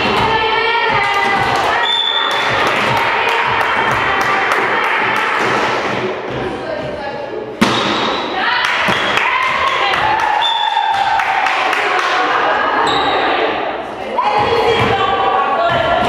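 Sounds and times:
players calling and shouting: 0.0s - 16.0s
loud volleyball hit: 7.6s - 10.1s.

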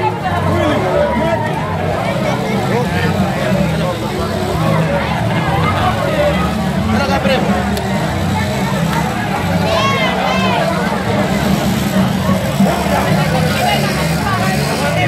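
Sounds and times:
crowd voices talking and calling: 0.0s - 15.0s.

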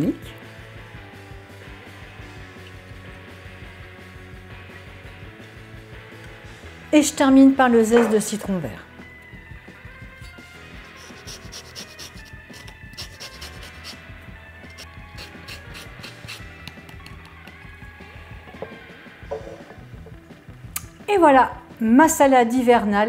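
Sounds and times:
quiet background music: 0.0s - 23.0s
grater scraping peel: 10.8s - 14.0s, 14.7s - 16.5s.

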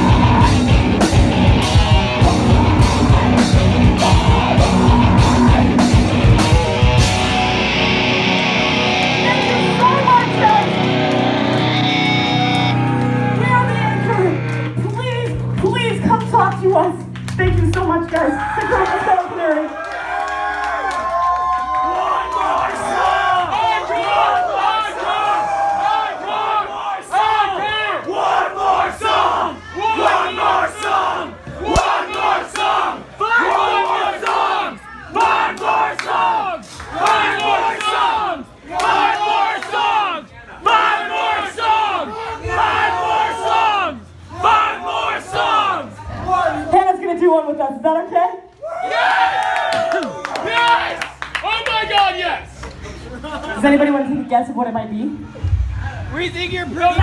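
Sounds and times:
crowd shouting and yelling: 0.0s - 16.3s, 18.1s - 47.6s, 48.4s - 53.2s, 55.0s - 57.0s.

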